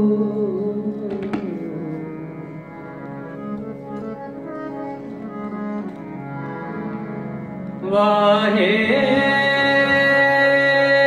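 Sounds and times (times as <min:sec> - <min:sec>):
person singing: 0:00.0 - 0:02.6, 0:07.8 - 0:11.0
harmoniums playing: 0:00.0 - 0:11.0.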